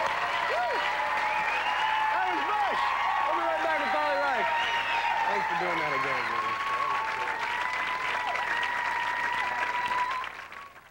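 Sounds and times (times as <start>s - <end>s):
audience applauding: 0.0s - 10.9s.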